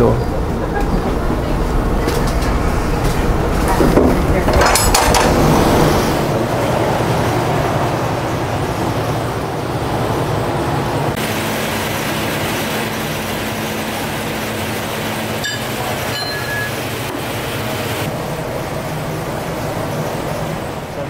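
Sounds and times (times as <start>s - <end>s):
machinery rumble with low hum: 0.0s - 21.0s.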